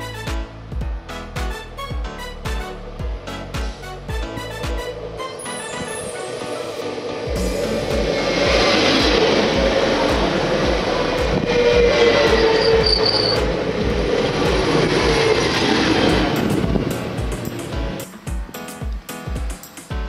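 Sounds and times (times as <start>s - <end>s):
background music with steady beat: 0.0s - 20.0s
electric train passing: 2.2s - 19.9s.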